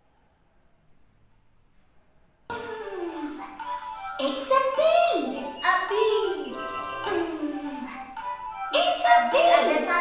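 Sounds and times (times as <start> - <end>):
children's chant music: 2.5 - 10.0.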